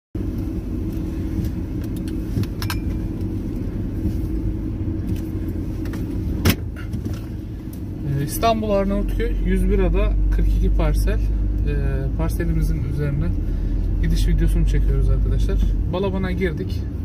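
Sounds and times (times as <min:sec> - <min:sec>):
car engine idling: 0:00.2 - 0:17.0.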